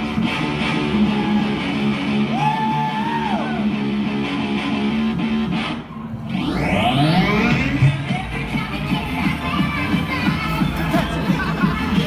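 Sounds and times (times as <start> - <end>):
loud distorted guitar music: 0.0 - 12.0
sweep rising in pitch: 5.7 - 9.4.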